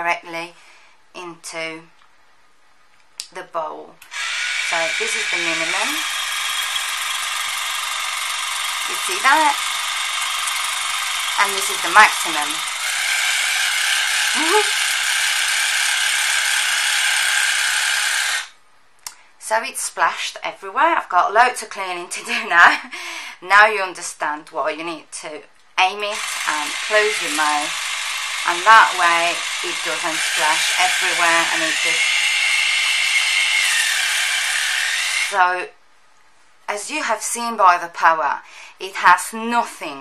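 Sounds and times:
water flosser pump buzzing: 4.1 - 18.5, 26.1 - 35.4.

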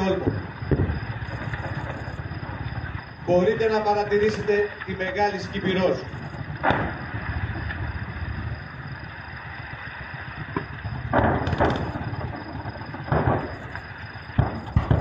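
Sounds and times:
low rumble: 0.0 - 15.0
distant gunfire bangs: 6.5 - 7.1, 10.5 - 15.0.

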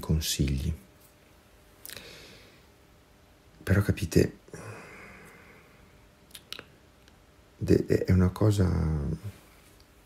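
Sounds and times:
man talking: 0.0 - 0.9, 3.6 - 5.1, 7.6 - 9.4
faint clicks: 6.3 - 7.2.

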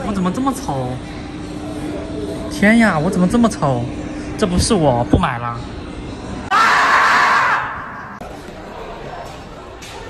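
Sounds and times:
loud raspy scream: 6.5 - 8.2.

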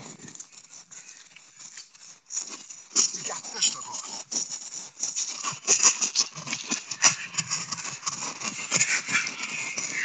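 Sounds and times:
footsteps on paved path: 0.0 - 10.0
rustling: 0.0 - 10.0.

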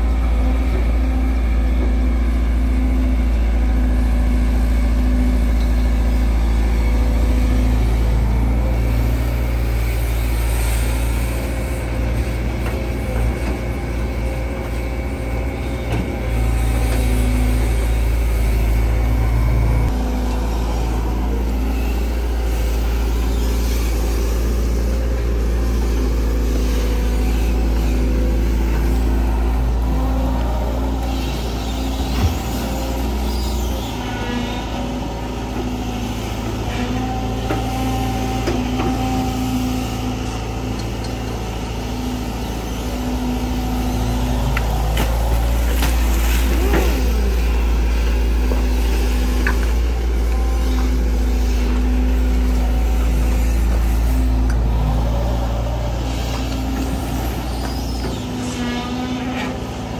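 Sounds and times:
excavator diesel engine under load: 0.0 - 59.9.

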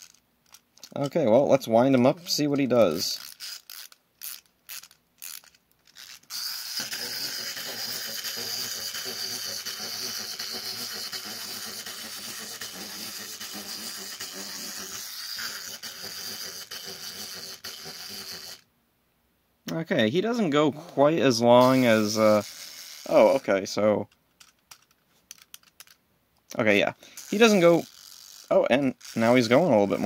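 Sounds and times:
wind-up toy ratchet clicks: 0.0 - 1.1, 1.9 - 18.7, 21.6 - 26.0, 27.0 - 30.0
toy spring motor whirring: 0.0 - 18.7, 20.2 - 26.0, 26.8 - 30.0.

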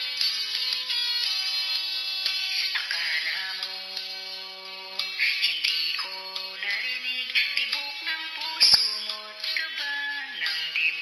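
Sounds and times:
autotuned voice singing ballad: 2.6 - 11.0.

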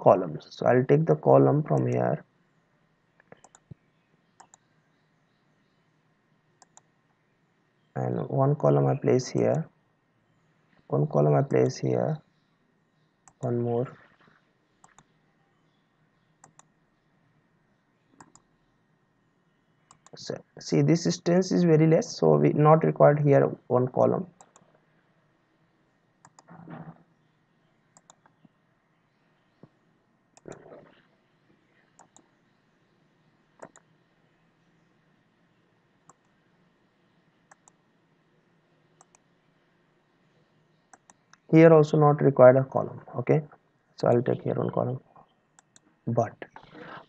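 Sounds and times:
computer mouse clicks: 3.2 - 3.8, 4.4 - 4.7, 6.6 - 6.9, 14.8 - 15.2, 16.4 - 16.8, 18.2 - 18.5, 19.9 - 20.2, 24.4 - 24.7, 26.2 - 27.0, 28.0 - 28.6, 30.4 - 31.0, 31.9 - 32.3, 33.6 - 33.9, 36.0 - 36.4, 37.5 - 37.8, 39.0 - 39.3, 40.9 - 41.5, 45.6 - 45.9.

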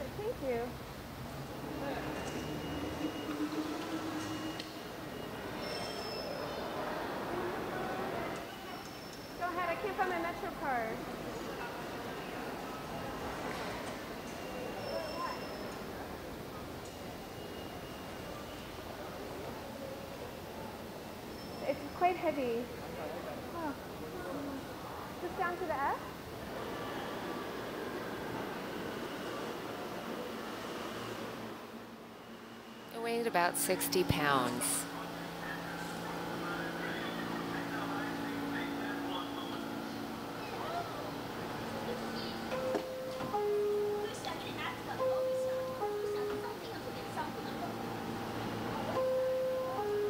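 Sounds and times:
subway train rumbling past: 9.3 - 50.0
two-tone electronic door chime: 42.5 - 44.2, 44.9 - 46.6, 48.9 - 50.0.

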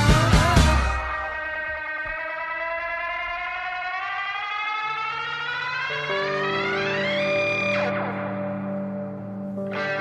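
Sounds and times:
siren-like electronic tone: 0.0 - 8.6.

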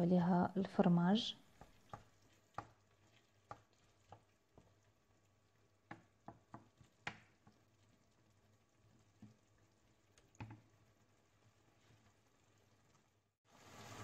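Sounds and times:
wooden spoon scraping a pan: 1.4 - 5.0.

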